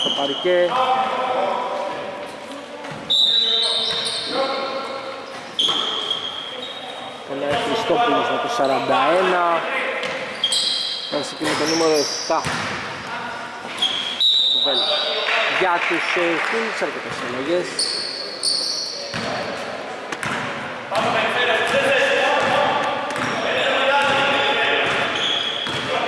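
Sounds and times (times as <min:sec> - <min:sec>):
shoe squeaks: 0:00.0 - 0:00.7, 0:02.8 - 0:07.1, 0:08.5 - 0:09.2, 0:10.0 - 0:12.5, 0:13.6 - 0:15.2, 0:17.6 - 0:19.3, 0:23.2 - 0:26.0
basketball bouncing on court: 0:12.4 - 0:12.8, 0:19.1 - 0:19.4, 0:20.2 - 0:21.8, 0:22.4 - 0:23.4, 0:24.0 - 0:26.0.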